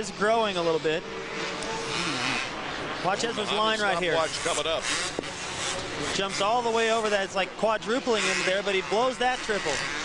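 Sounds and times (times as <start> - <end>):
dirt bike engines: 0.0 - 10.0.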